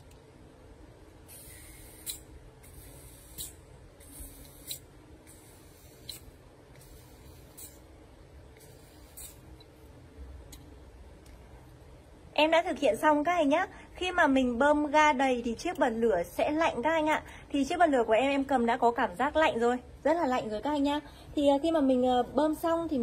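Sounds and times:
gas hissing into lighter: 0:01.2 - 0:07.9, 0:08.6 - 0:09.6
refill can click: 0:01.3 - 0:05.4.

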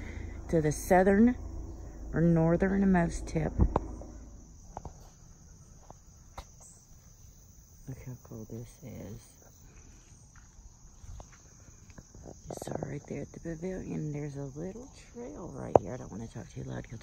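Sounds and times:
voices: 0:00.0 - 0:04.4, 0:07.8 - 0:09.8, 0:11.9 - 0:17.0
insect chorus: 0:00.0 - 0:17.0
footsteps on dirt trail: 0:09.5 - 0:12.4.

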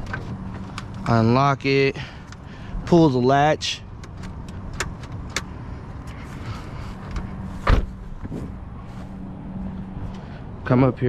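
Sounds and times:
heavy dull thump: 0:07.6 - 0:08.6.

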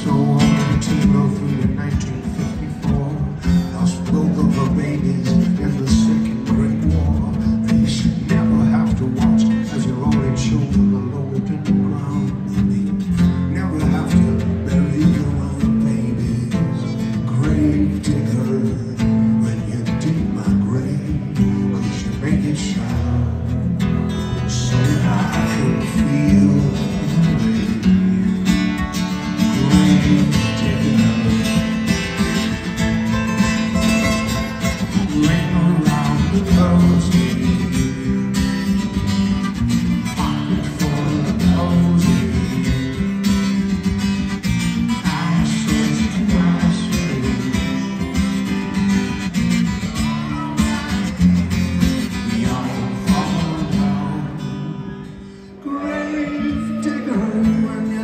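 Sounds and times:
acoustic guitars playing: 0:00.0 - 0:58.0.

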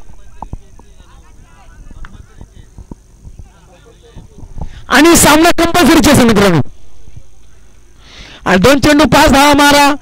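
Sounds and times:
faint distant voices: 0:00.0 - 0:05.0, 0:06.5 - 0:08.2
faint high whine: 0:00.0 - 0:10.0.

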